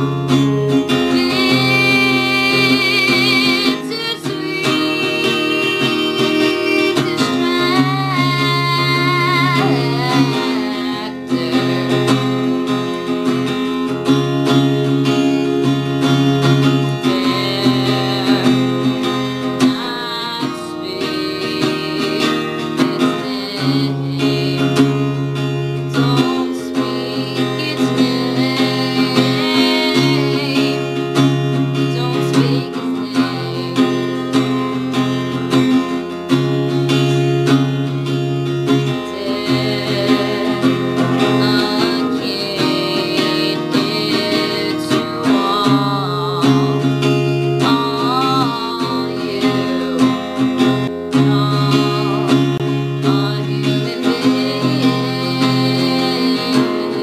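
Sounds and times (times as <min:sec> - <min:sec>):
acoustic guitar strumming: 0:00.0 - 0:57.0
woman singing: 0:00.0 - 0:57.0.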